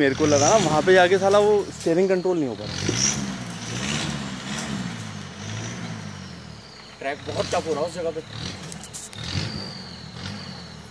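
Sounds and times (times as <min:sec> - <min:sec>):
jeep engine revving: 0:00.0 - 0:10.9
vehicle over rough dirt track: 0:00.0 - 0:10.9.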